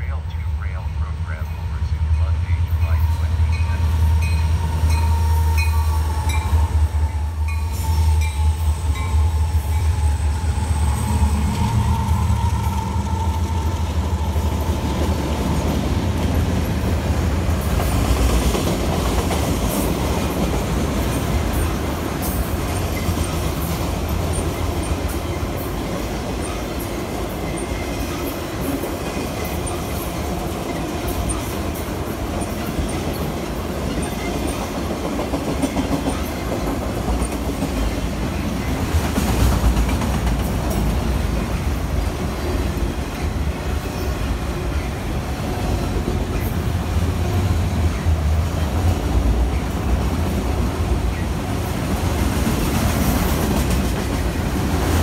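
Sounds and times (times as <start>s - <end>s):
freight train rumbling and rattling: 0.0s - 55.0s.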